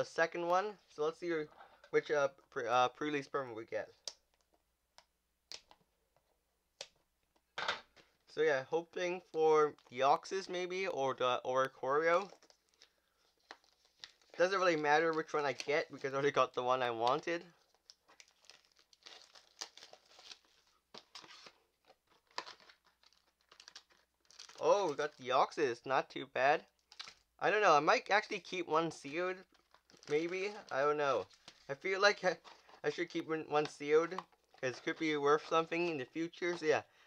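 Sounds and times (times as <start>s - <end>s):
plastic wrap crinkling: 11.6s - 25.2s, 26.7s - 27.3s, 29.0s - 36.7s
packaging rustle: 12.1s - 16.0s, 17.0s - 25.2s, 29.4s - 33.0s.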